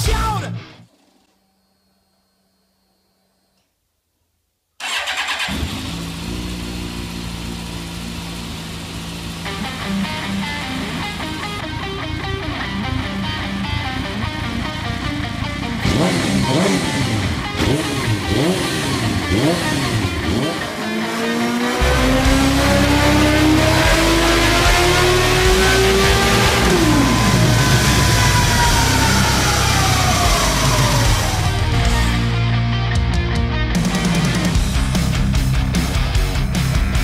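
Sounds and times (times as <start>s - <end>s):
music: 0.0s - 1.0s, 9.4s - 37.0s
motorcycle engine revving: 4.8s - 32.4s
whine winding down: 20.9s - 32.4s.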